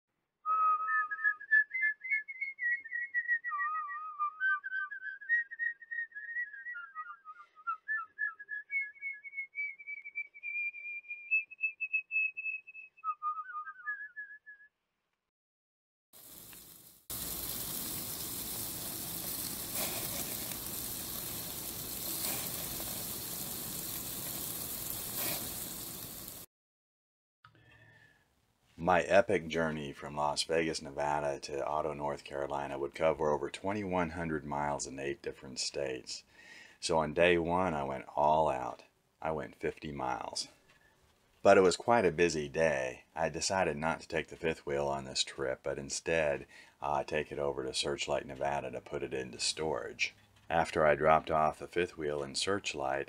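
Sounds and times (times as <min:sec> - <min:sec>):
person whistling a tune: 0:00.4 - 0:14.7
burgers sizzling on a grill: 0:16.2 - 0:26.5.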